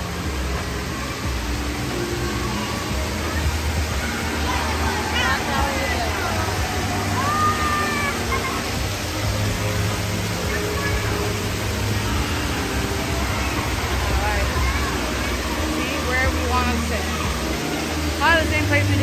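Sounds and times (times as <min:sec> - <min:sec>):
children's voices: 0:00.0 - 0:19.0
water pouring: 0:00.0 - 0:19.0.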